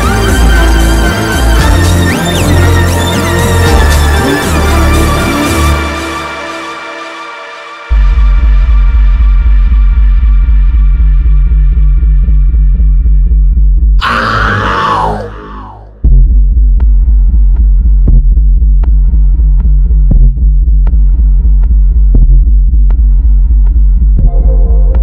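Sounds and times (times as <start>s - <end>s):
pulsing bass: 0.0s - 6.5s, 7.9s - 25.0s.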